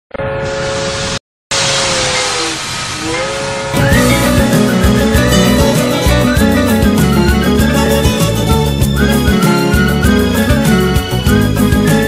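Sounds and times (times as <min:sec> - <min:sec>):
steam hissing: 0:00.7 - 0:06.6
steam whistle: 0:01.5 - 0:07.5
music: 0:03.8 - 0:12.0.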